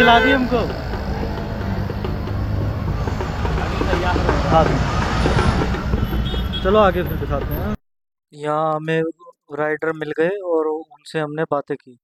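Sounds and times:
road traffic: 0.0s - 7.8s
vehicle engine humming: 0.0s - 7.8s.

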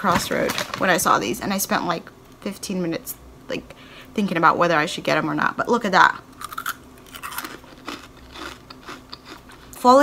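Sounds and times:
chewing crunchy chip: 6.3s - 9.7s.

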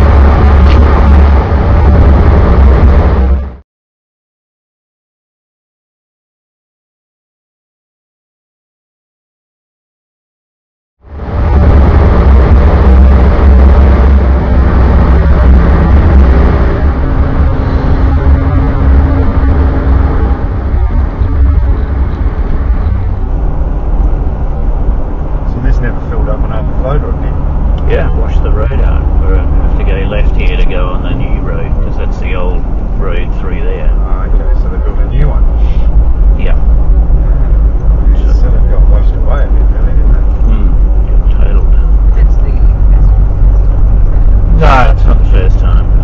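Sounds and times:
car engine and tyres rumbling: 0.0s - 3.6s, 11.0s - 46.0s.

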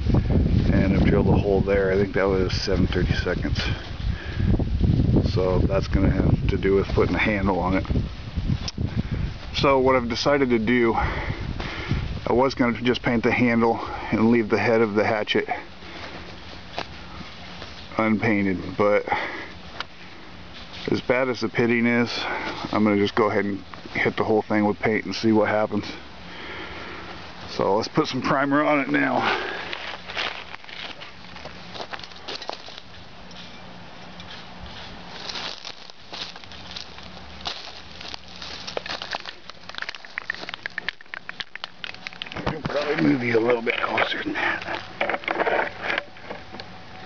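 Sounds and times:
dry leaves crunching underfoot: 29.0s - 45.9s.

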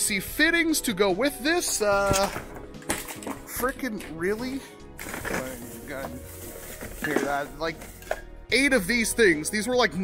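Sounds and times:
plastic bag crinkling: 5.0s - 8.0s.

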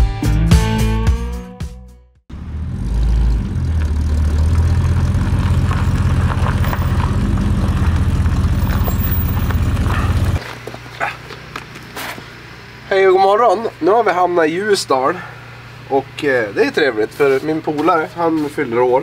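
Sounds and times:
car engine running: 2.3s - 10.4s.

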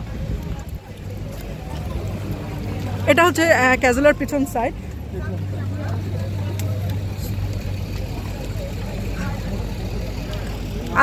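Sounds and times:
faint street crowd chatter: 0.0s - 11.0s
vehicle engine idling: 0.0s - 11.0s.

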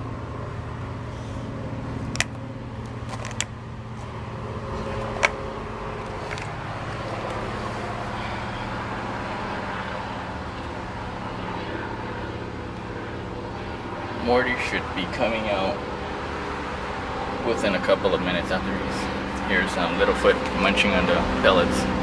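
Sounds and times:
low mechanical hum: 0.0s - 22.0s
tortoise crunching dry pellets: 2.1s - 7.6s.

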